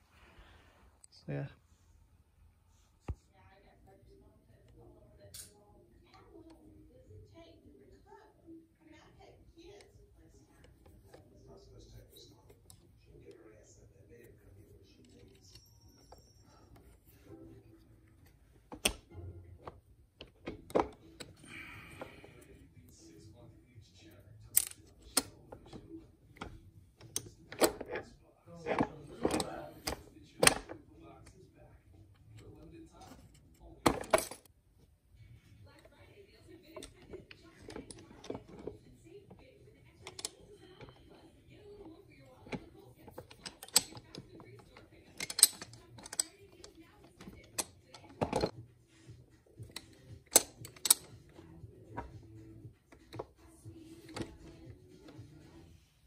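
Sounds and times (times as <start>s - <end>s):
metal parts clicking and tapping: 24.5s - 25.8s, 39.4s - 41.2s, 42.4s - 48.6s, 49.6s - 55.3s
metal gears clicking and clinking: 43.2s - 46.7s, 49.7s - 51.2s.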